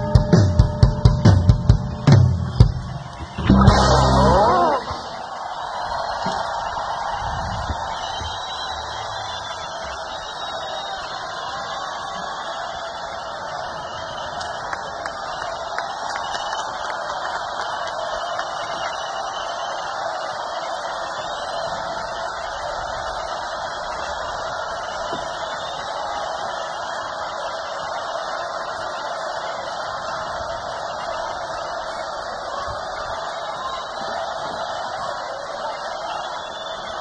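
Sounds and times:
crowd cheering and applauding: 0.0s - 37.0s.

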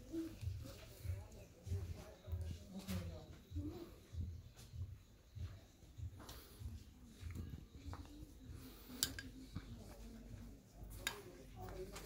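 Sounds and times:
faint people talking: 0.0s - 12.0s.

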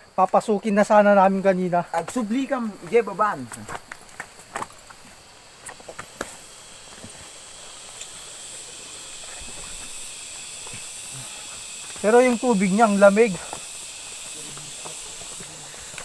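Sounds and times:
steady outdoor hiss: 0.0s - 16.0s
footsteps on rocky leafy trail: 1.8s - 16.0s.

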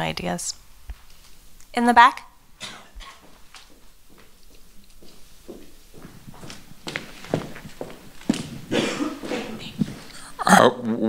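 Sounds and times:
footsteps: 2.6s - 10.4s.

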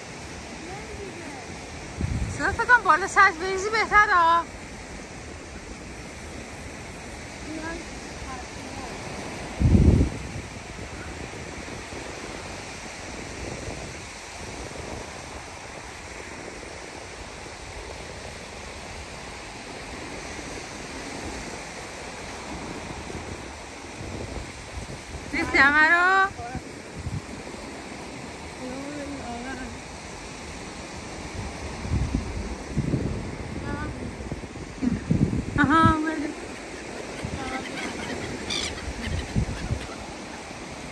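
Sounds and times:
small sea waves: 0.0s - 40.9s
wind: 0.0s - 40.9s.

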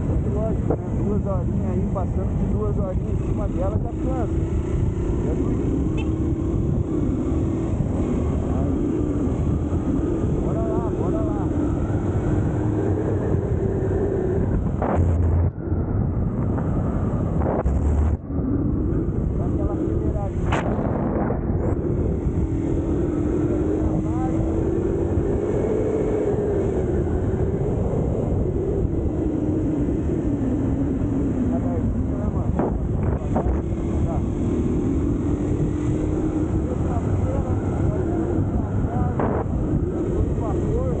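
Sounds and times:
motorcycle engine revving: 0.0s - 41.0s
wind rush on microphone: 0.0s - 41.0s.

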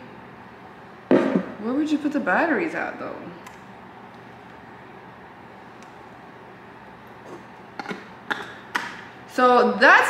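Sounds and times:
plastic blender cup knocks: 1.1s - 1.5s.

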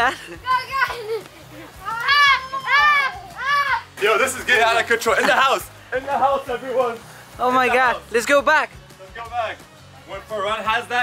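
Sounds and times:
excited yelling and shrieks: 1.8s - 4.0s.

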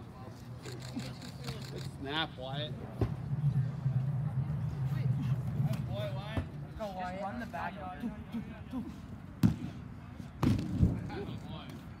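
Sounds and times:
sharp smack of football: 9.4s - 9.7s, 10.4s - 10.9s.

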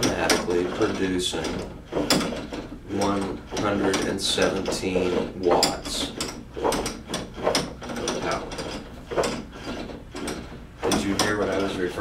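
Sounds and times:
drive mechanism clicking and clattering: 0.0s - 12.0s.

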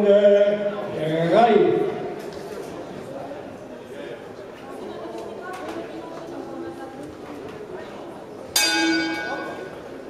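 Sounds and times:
boxing ring bell ringing: 8.6s - 9.8s.

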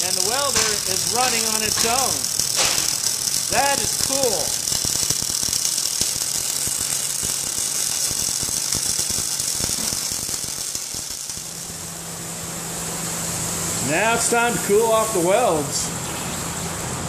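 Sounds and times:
welding arc crackle and hiss: 0.0s - 17.0s.

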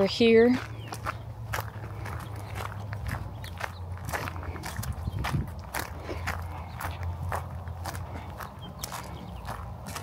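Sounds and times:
footsteps crunching on mulch: 0.0s - 10.0s
steady low rumble: 0.0s - 10.0s.

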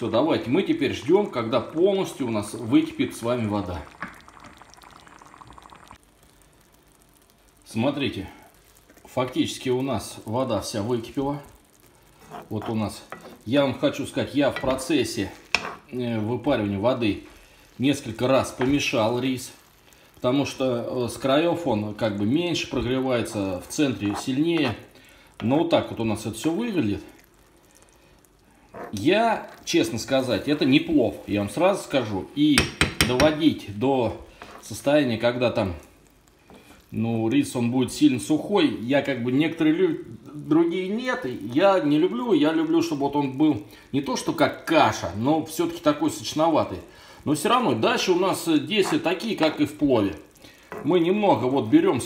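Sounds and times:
man speaking: 0.0s - 4.0s, 9.1s - 11.6s, 12.5s - 17.2s, 17.8s - 19.6s, 20.2s - 27.2s, 28.9s - 35.8s, 36.9s - 50.2s, 50.8s - 52.0s
broth bubbling in a pan: 0.0s - 52.0s
faint hiss: 0.0s - 52.0s.

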